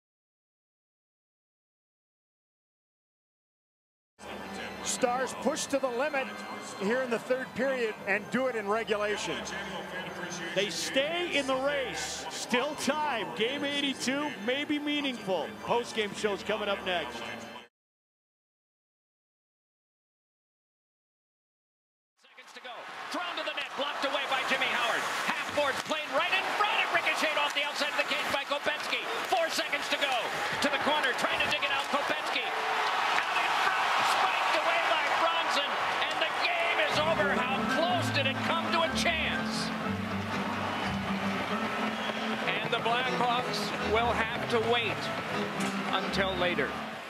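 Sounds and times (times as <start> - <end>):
arena crowd voices: 4.2 - 17.7, 22.3 - 47.0.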